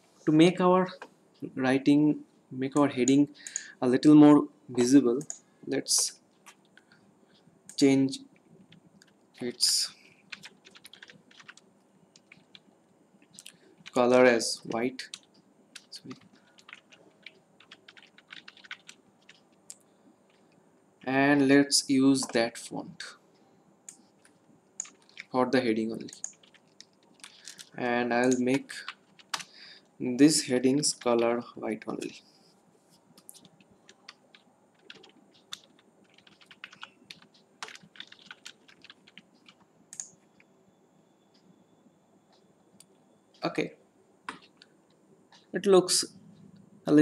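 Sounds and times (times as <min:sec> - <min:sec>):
typing on computer keyboard: 0:09.0 - 0:11.6, 0:12.2 - 0:12.7, 0:14.7 - 0:19.5, 0:23.9 - 0:25.3, 0:26.0 - 0:29.5, 0:33.2 - 0:40.5.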